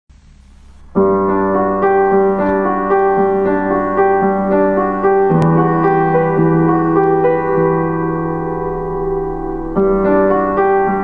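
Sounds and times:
slow piano music: 0:00.4 - 0:11.0.

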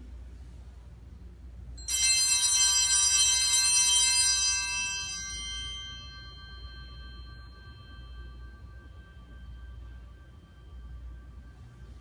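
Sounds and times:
small bells ringing: 0:01.8 - 0:12.0.

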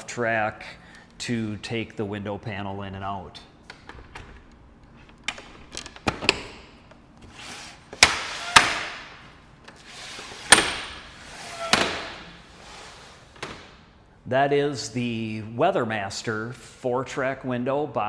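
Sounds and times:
window panels sliding: 0:09.7 - 0:13.6.

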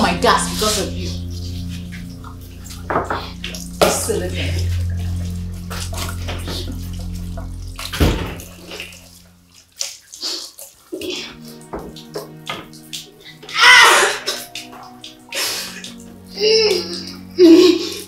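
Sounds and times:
background music: 0:00.0 - 0:10.2, 0:10.9 - 0:18.0
tap water running into sink: 0:00.0 - 0:18.0.

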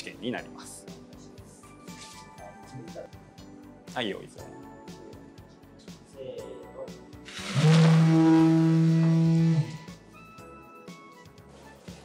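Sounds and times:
power tool motor humming: 0:07.3 - 0:09.9.

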